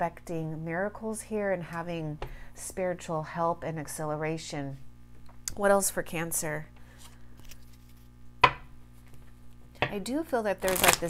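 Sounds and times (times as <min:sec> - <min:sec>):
knock on tabletop: 0:08.4 - 0:08.7.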